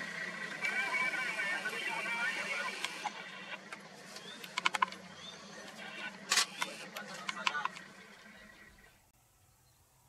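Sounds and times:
low steady hum: 0:00.0 - 0:10.0
camera shutters clicking: 0:06.3 - 0:07.8.

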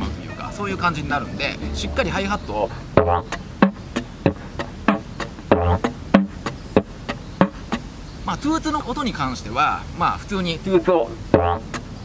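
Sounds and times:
didgeridoo low drone: 0:01.5 - 0:03.4, 0:04.2 - 0:05.9
short toot pops: 0:03.0 - 0:07.8, 0:11.3 - 0:11.9.

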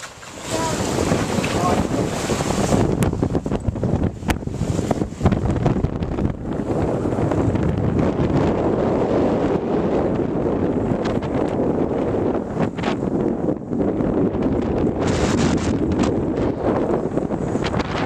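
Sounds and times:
water rushing past hull: 0:00.0 - 0:18.0
wind buffeting microphone: 0:00.0 - 0:18.0.

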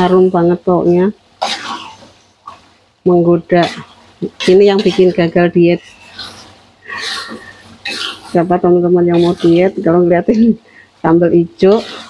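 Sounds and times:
sauce sputtering in hot oil: 0:00.0 - 0:12.0.

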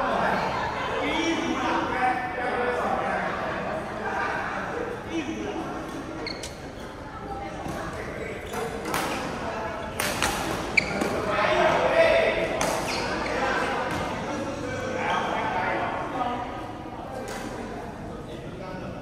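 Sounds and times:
players' voices: 0:00.0 - 0:19.0.

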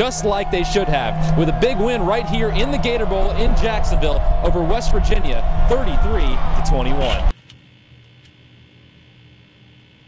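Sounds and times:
faint hum and hiss: 0:07.0 - 0:10.0.

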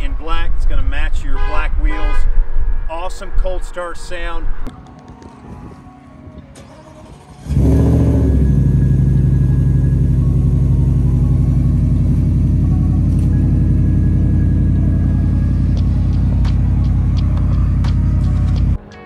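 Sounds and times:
engine starting and idling: 0:06.6 - 0:16.1.

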